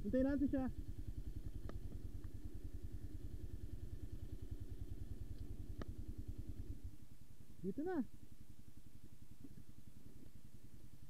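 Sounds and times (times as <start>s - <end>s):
dirt bike engine idling: 0.0s - 11.0s.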